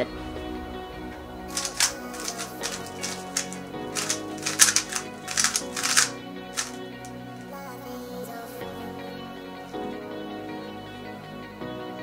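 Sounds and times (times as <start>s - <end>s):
puzzle cube clicking: 1.5s - 6.8s.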